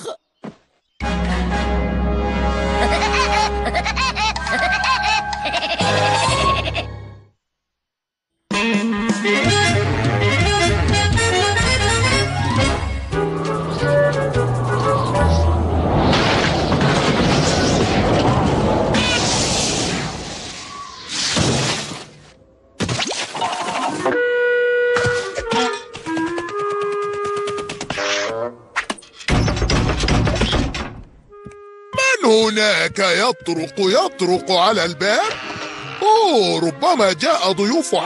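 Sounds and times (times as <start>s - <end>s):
cartoon woodpecker staccato laugh: 2.8s - 7.0s
loud rushing noise: 14.3s - 21.1s
sudden noisy burst: 14.6s - 22.0s.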